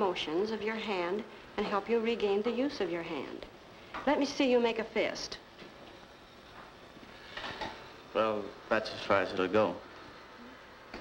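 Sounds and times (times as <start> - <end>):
low steady hiss: 0.0 - 11.0.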